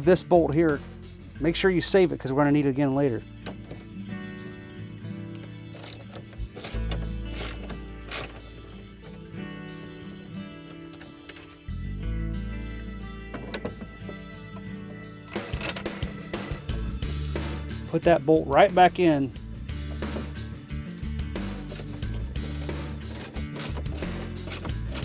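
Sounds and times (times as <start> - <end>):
background music with bass line: 0.0 - 25.0
socket ratchet clicking: 5.4 - 8.5, 22.4 - 25.0.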